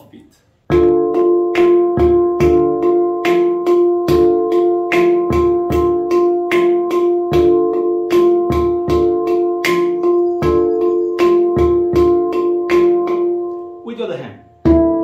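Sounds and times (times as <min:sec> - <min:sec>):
handpan groove: 0:00.7 - 0:15.0.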